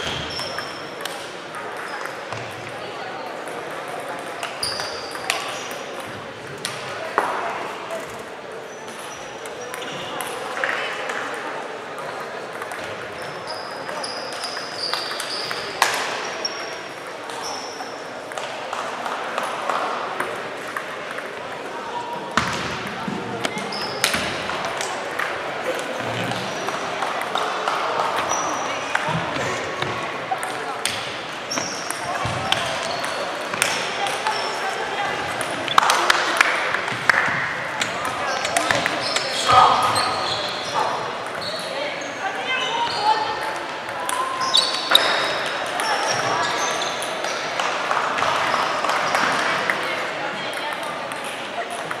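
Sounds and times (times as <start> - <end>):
table tennis balls clicking: 12.1 - 13.2, 13.8 - 16.0
voices talking: 21.2 - 52.0
short high squeaks: 44.3 - 45.4.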